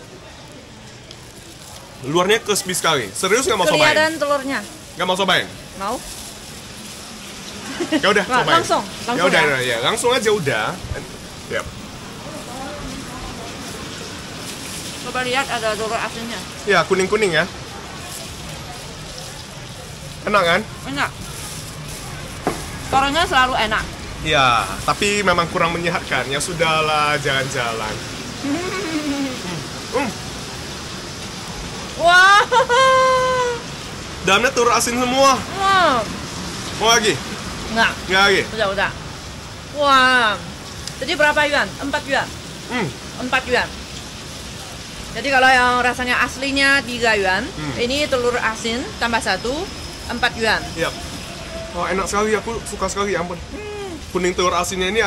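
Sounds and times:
steady background hiss: 0.0s - 55.0s
man murmuring: 28.4s - 30.2s, 42.7s - 43.0s, 47.6s - 47.8s, 53.5s - 54.1s.

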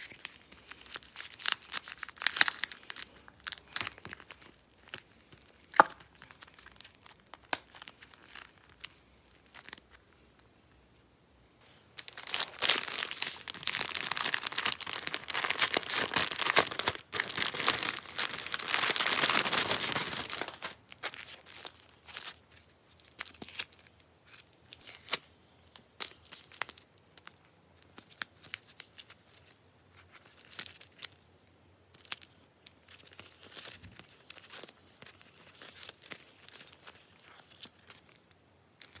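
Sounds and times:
plastic sleeves crinkling: 0.0s - 11.0s, 11.6s - 31.2s, 31.9s - 39.0s.

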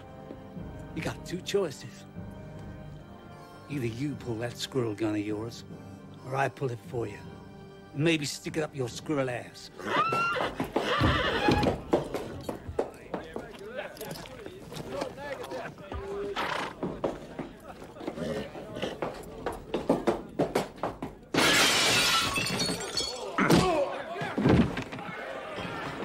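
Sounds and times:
knocks and thumps: 23.4s - 25.1s.

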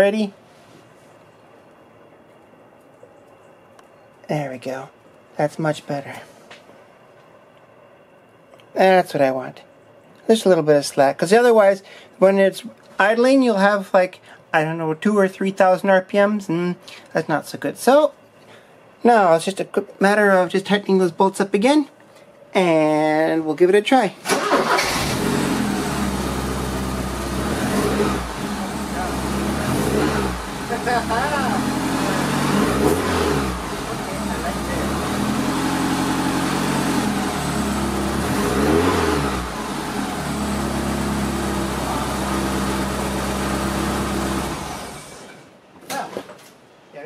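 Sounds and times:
car engine idling and revving: 24.8s - 45.3s.

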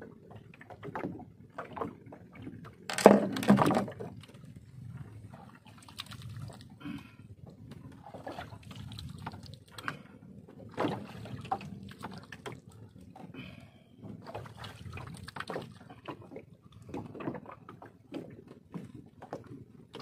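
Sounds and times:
water sloshing against boat hull: 0.0s - 20.0s
splashing: 10.7s - 12.8s.

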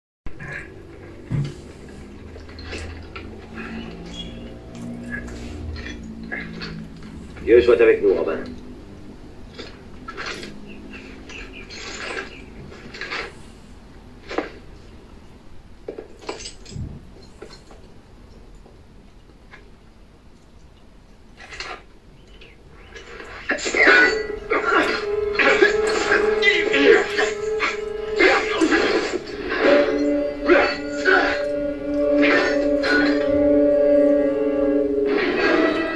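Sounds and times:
film soundtrack on television: 0.3s - 35.9s
swords clashing: 23.5s - 33.4s.

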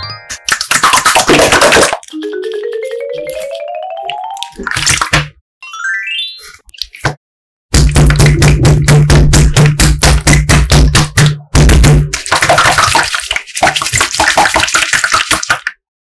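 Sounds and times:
slime squishing and crackling: 0.5s - 2.3s, 3.3s - 5.2s, 12.0s - 15.7s.

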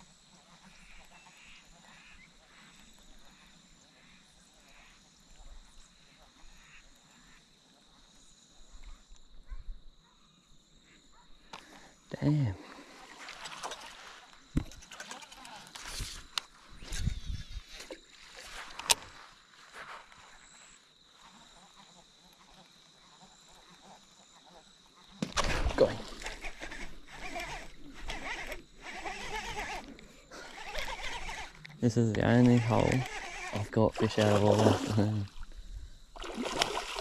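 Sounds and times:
camera handling rustle: 14.5s - 19.2s
fishing reel clicks: 26.2s - 33.8s.

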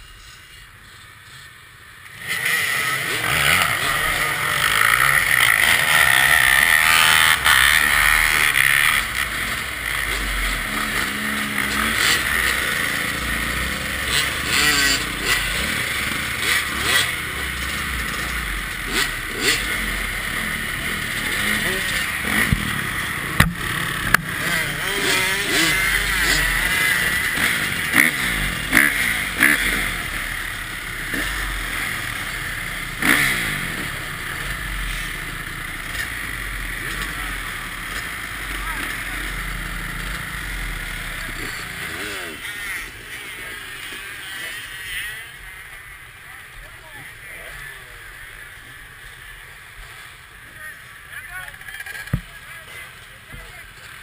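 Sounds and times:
dirt bike engines revving: 0.0s - 54.0s.

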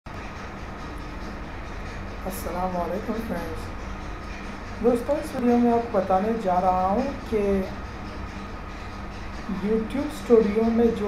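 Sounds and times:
hiss and rumble: 0.1s - 11.0s
low hum: 0.1s - 11.0s.

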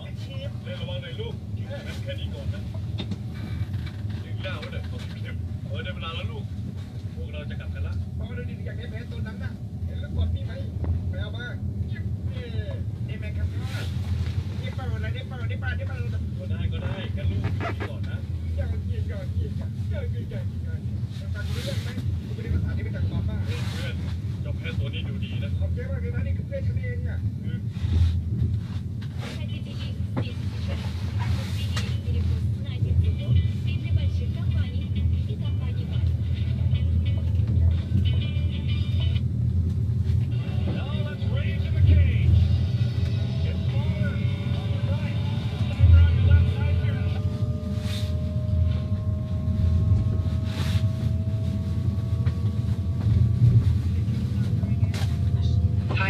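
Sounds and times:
vehicle rumble: 0.0s - 56.0s
slow rising whine: 42.7s - 56.0s.

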